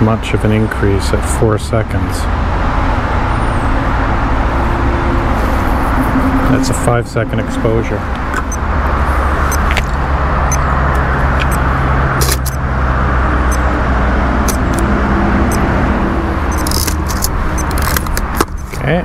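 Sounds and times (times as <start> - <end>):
vehicle engine and road noise: 0.0 - 19.0.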